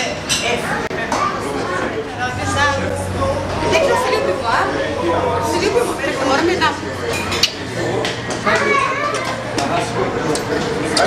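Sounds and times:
people talking over one another: 0.0s - 11.0s
young child's voice: 8.5s - 9.4s.

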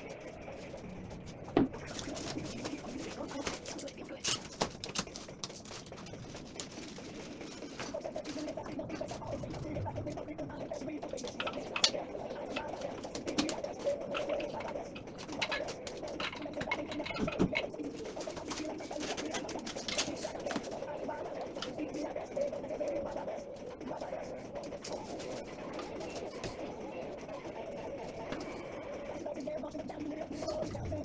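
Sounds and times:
plastic wrapping rustling: 0.2s - 26.8s
furniture parts clicking: 1.5s - 9.2s, 11.0s - 20.8s.

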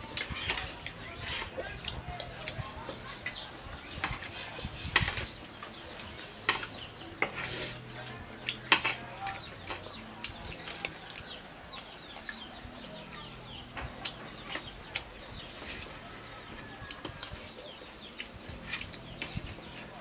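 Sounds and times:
small birds chirping: 0.0s - 20.0s
spoons clicking on plates: 6.0s - 9.8s.

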